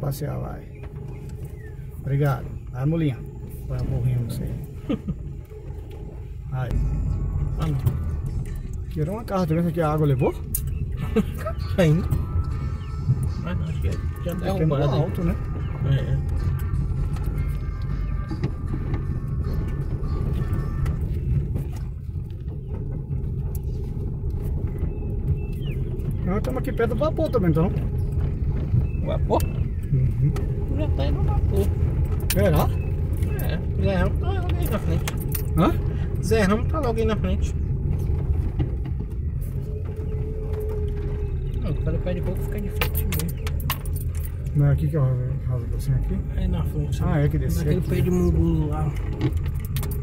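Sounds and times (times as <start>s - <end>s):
car engine and road rumble: 0.0s - 50.0s
light rattles: 0.0s - 50.0s
wheels knocking over ruts: 0.0s - 50.0s.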